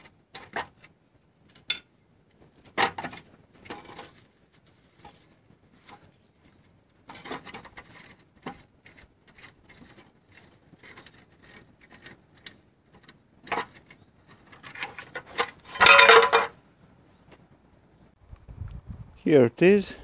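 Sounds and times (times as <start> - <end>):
metal scraping and clicking: 5.0 - 16.5
metal crossmember clattering to ground: 14.6 - 16.6.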